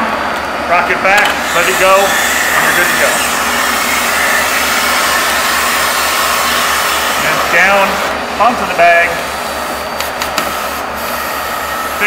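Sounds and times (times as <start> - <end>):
blower rushing air: 0.0 - 12.0.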